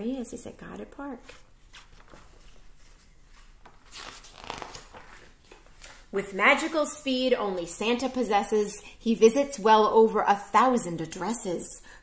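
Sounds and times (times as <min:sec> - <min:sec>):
book pages rustling: 0:01.2 - 0:06.1.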